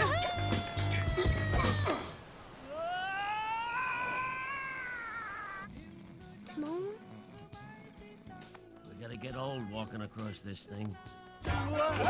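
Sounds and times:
cartoon character crying out: 2.7s - 5.7s.

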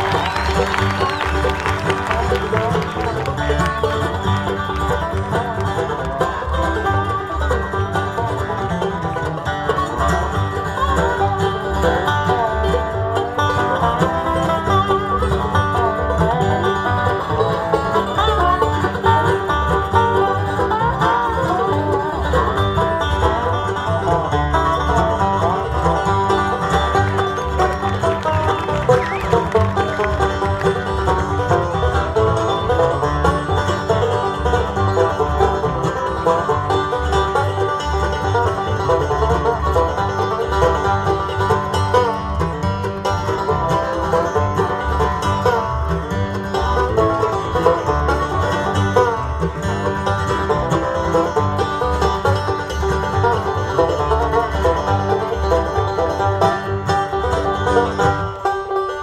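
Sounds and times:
banjo: 0.0s - 59.0s
bluegrass band playing: 0.0s - 59.0s.

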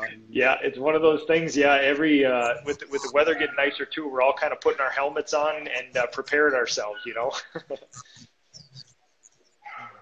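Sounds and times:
dogs whimpering and yipping: 3.3s - 3.7s, 9.6s - 10.0s.

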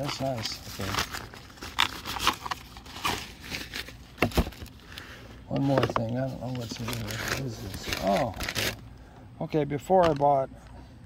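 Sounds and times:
drawstring pouch rustling: 0.0s - 5.0s, 5.6s - 8.8s.

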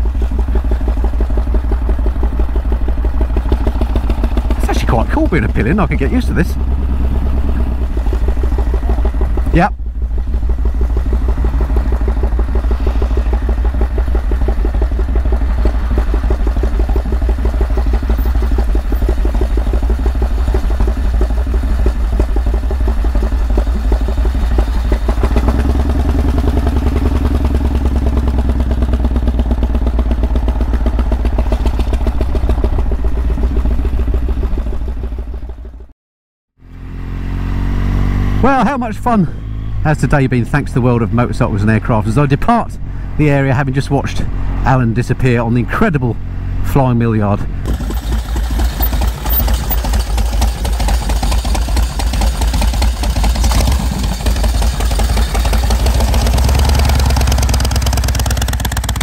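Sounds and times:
motorcycle engine running: 0.0s - 35.9s, 36.6s - 59.0s.

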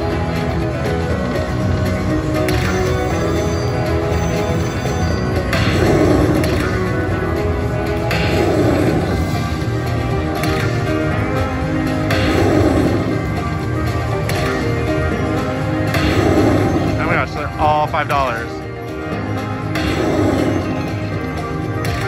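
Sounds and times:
slot machine music and effects: 0.0s - 22.0s.

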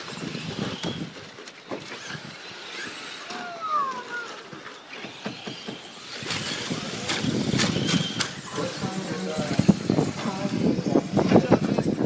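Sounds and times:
rc trucks driving on dirt: 0.0s - 12.0s.

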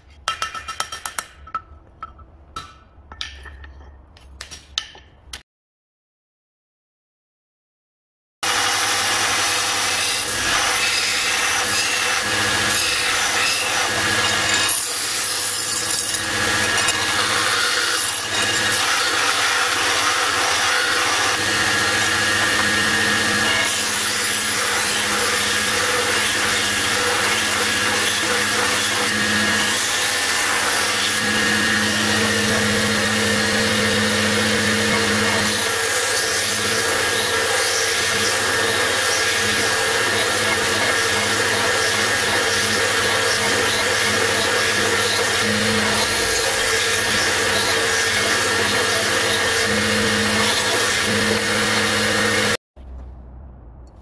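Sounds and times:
belt grinder grinding steel blade: 8.4s - 52.6s.

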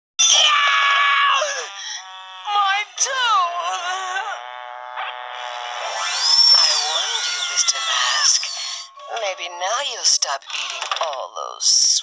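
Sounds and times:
cartoon character screaming: 0.2s - 2.0s, 5.9s - 9.1s.

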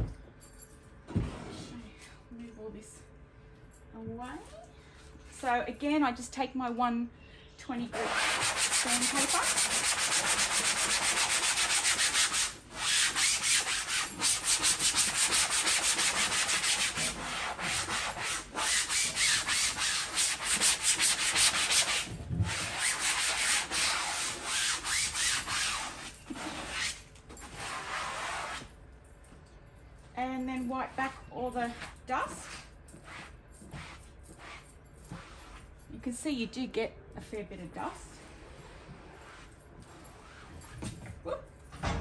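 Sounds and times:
sandpaper rubbing on fabric: 8.0s - 28.7s, 32.3s - 35.7s.

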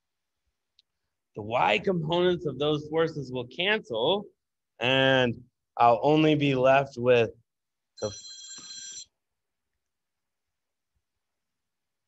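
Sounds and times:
electronic ringing tone: 8.0s - 9.1s.

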